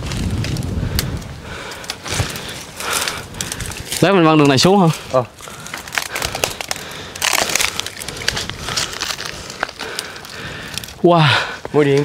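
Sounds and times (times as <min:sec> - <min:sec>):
dry twigs and leaves crackling: 0:00.0 - 0:12.0.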